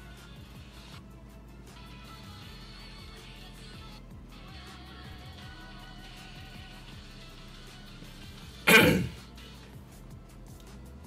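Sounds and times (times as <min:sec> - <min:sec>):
background music: 0:00.0 - 0:11.0
man clearing his throat: 0:08.7 - 0:09.2.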